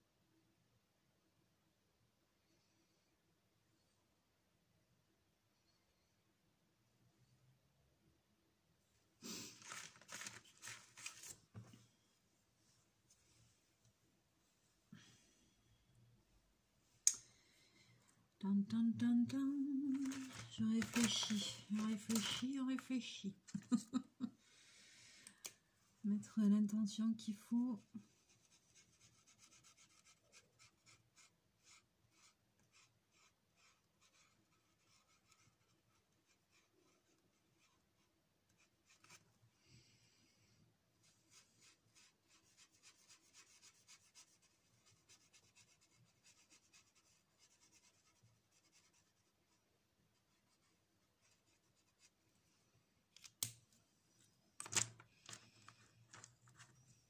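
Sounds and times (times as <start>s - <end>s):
marker scratching on paper: 28.1s - 37.8s, 41.3s - 49.6s.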